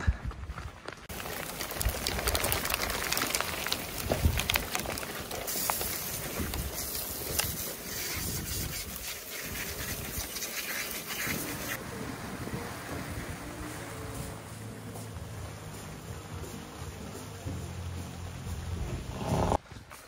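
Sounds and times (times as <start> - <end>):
hail ticking: 0.6 - 11.8
rain hissing: 1.0 - 19.6.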